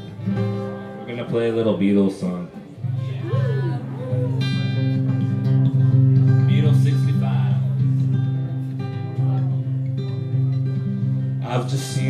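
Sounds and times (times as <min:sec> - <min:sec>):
acoustic guitar chords: 0:00.0 - 0:12.0.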